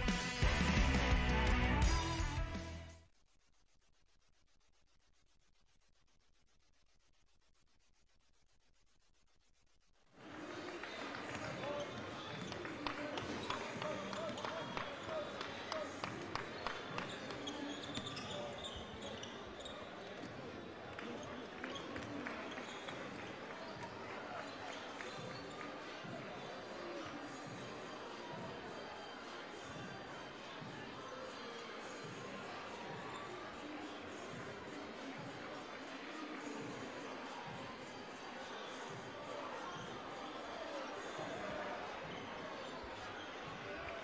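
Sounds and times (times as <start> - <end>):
murmur of crowd talking: 10.2 - 44.0.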